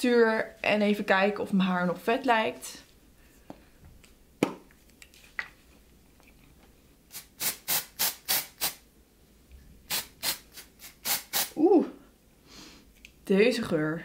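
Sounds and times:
aerosol spray puffs: 0:07.1 - 0:08.8, 0:09.9 - 0:11.6.

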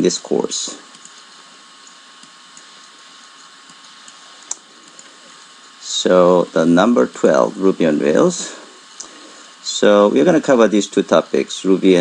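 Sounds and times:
microphone background hiss: 0:00.0 - 0:12.0.

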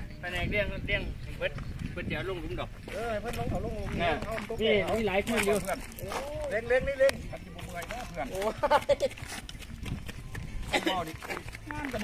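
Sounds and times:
people talking: 0:00.0 - 0:09.2, 0:10.6 - 0:12.0.

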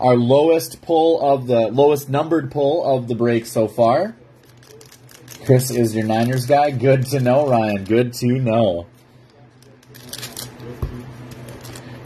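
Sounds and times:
foil wrapper crinkling: 0:04.4 - 0:08.1, 0:09.7 - 0:12.0.

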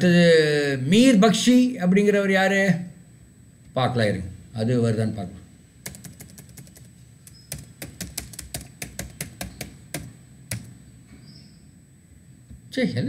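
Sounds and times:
computer keyboard keys clicking: 0:05.8 - 0:10.7.

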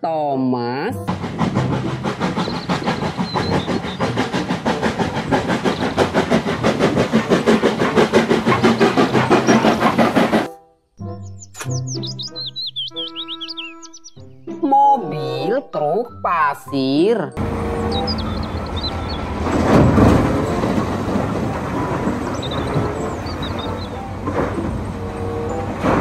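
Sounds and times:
steam locomotive chuffing: 0:00.8 - 0:10.6, 0:17.4 - 0:26.0
high chirping: 0:11.1 - 0:15.6, 0:17.6 - 0:19.6, 0:22.1 - 0:24.2.

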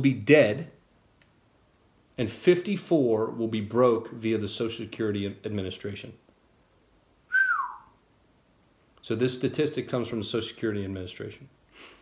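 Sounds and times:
man whistling falling note: 0:07.3 - 0:08.0.

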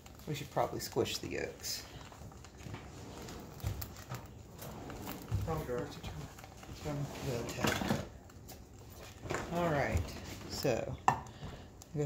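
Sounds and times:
person speaking: 0:00.2 - 0:02.0, 0:05.3 - 0:08.1.

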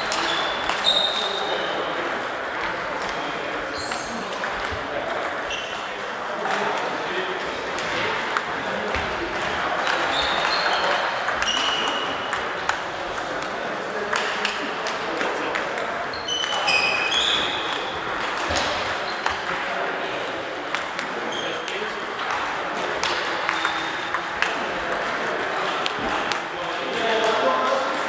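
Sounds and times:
murmur of voices: 0:00.0 - 0:28.0
table tennis balls clicking: 0:00.0 - 0:28.0.

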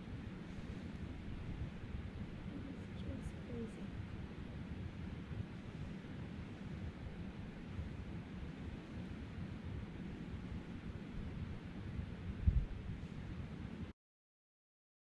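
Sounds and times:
wind rumbling on microphone: 0:00.0 - 0:13.9.

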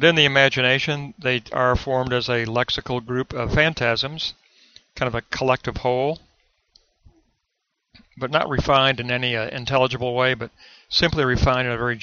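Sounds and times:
man speaking: 0:00.0 - 0:04.4, 0:05.0 - 0:06.2, 0:08.2 - 0:12.0
faint clicks: 0:06.2 - 0:07.2.

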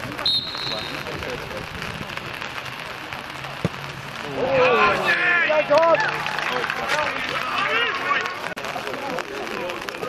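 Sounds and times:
referee's whistle blast: 0:00.2 - 0:01.1.

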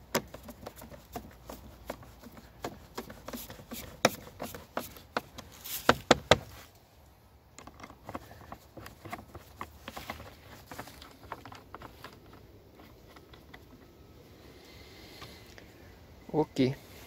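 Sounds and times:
plastic parts being handled: 0:07.5 - 0:14.0.

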